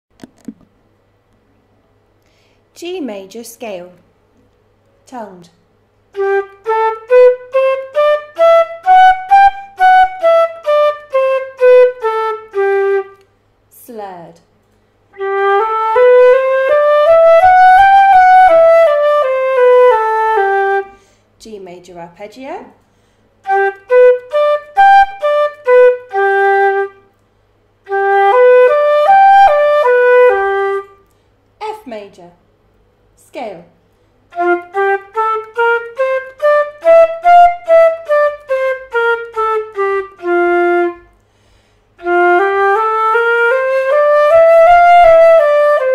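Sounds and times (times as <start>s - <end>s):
wind instrument playing a scale: 6.2s - 13.2s, 15.2s - 21.0s, 23.4s - 27.0s, 27.9s - 31.0s, 34.3s - 41.1s, 42.0s - 45.9s.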